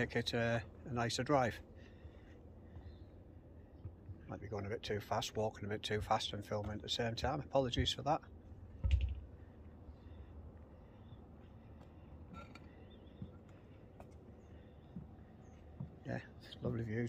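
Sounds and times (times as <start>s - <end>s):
open-air ambience: 0.0s - 17.0s.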